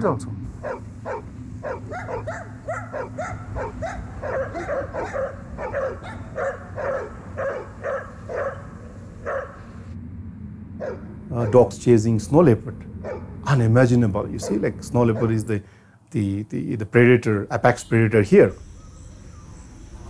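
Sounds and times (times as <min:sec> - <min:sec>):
low steady hum: 0:00.0 - 0:20.0
dogs barking rapidly: 0:00.5 - 0:09.8, 0:10.8 - 0:11.7, 0:13.0 - 0:13.4, 0:14.3 - 0:15.5.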